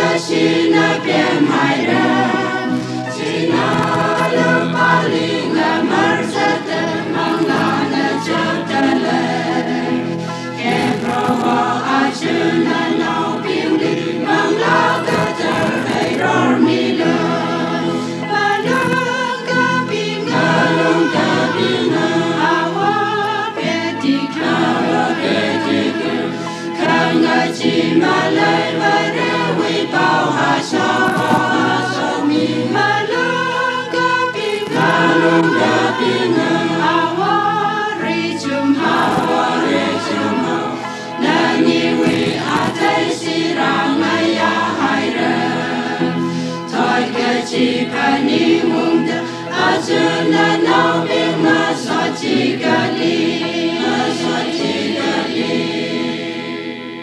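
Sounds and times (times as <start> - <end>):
choir singing gospel: 0.0 - 57.0.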